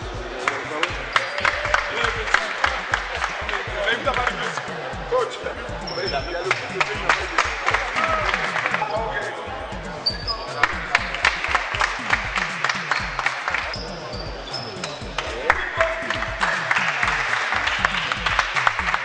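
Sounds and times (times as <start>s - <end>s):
background music: 0.0s - 19.0s
voices: 0.0s - 19.0s.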